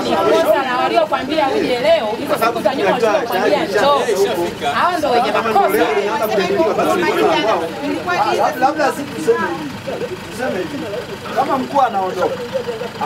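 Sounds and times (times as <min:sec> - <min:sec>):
group of people talking: 0:00.0 - 0:13.0.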